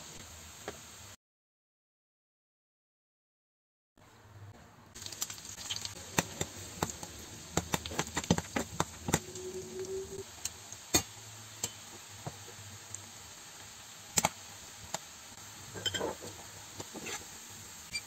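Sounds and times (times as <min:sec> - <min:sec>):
ginger sizzling in oil: 0:00.0 - 0:01.2, 0:04.9 - 0:18.0
metal skimmer scraping pan: 0:15.7 - 0:17.3.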